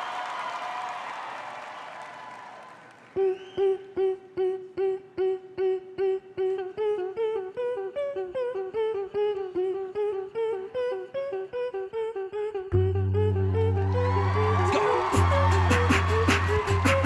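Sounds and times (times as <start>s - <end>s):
vocal melody: 3.2s - 17.0s
pulsing hummed note: 11.6s - 16.8s
deep vocal bass: 12.6s - 17.0s.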